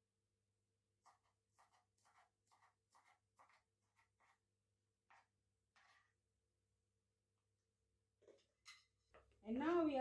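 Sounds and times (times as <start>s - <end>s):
knife cutting on plastic board: 1.0s - 4.4s.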